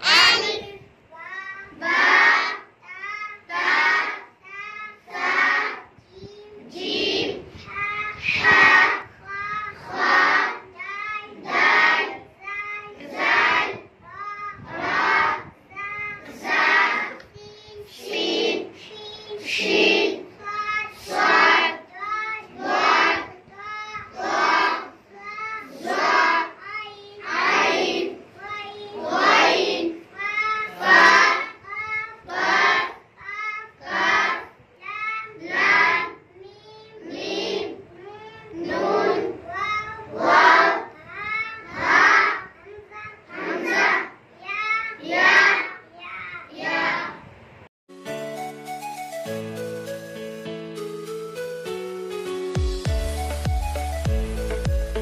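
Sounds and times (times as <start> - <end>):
child calling out letters: 0.0 - 1.6
children repeating in chorus: 0.0 - 47.2
girl chanting sing-song: 0.0 - 47.3.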